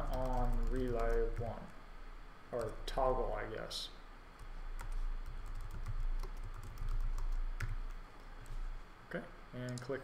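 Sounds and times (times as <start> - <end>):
computer keyboard typing: 0.0 - 1.6, 2.6 - 2.8, 4.4 - 8.6
low steady hum: 0.0 - 10.0.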